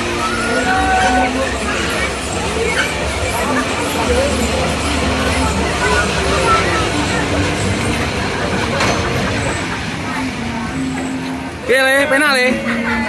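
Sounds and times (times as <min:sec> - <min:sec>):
roller coaster rumbling on track: 0:00.0 - 0:13.0.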